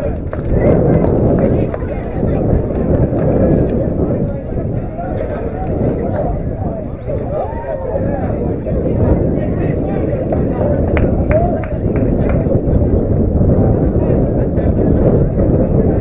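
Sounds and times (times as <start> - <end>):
indistinct voices: 0.0 - 16.0
steady low rumble: 0.0 - 16.0.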